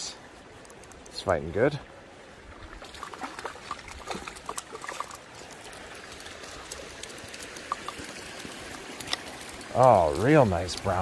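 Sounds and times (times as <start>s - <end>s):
faint wash of water: 1.9s - 11.0s
fish splashing in water: 2.5s - 9.8s.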